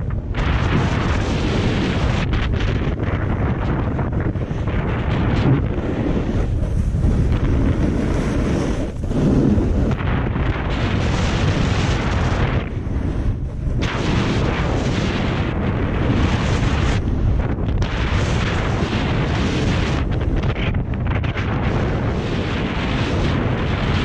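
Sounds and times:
wind buffeting microphone: 0.0 - 24.0
skis scraping over snow: 0.1 - 24.0.

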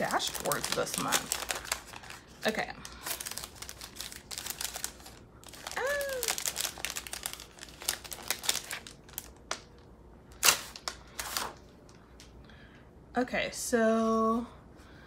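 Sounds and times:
paper rustling and crinkling: 0.0 - 9.6, 10.4 - 11.7.

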